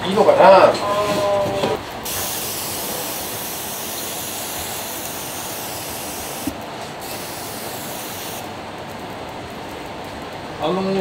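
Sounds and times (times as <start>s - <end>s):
pump sprayer hissing: 2.0s - 8.5s.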